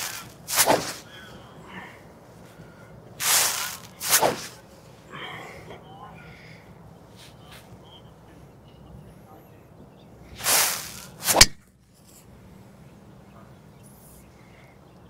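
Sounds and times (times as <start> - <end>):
golf club swish: 0.0 - 1.1, 3.2 - 4.7, 10.4 - 11.6
golf club striking ball: 10.6 - 11.6.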